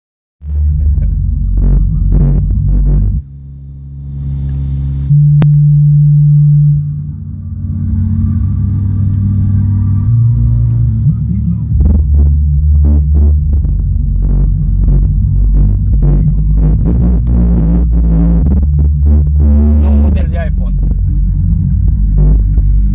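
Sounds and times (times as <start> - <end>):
bass-heavy music through subwoofers: 0.4 - 22.9
held low bass tone: 0.4 - 22.9.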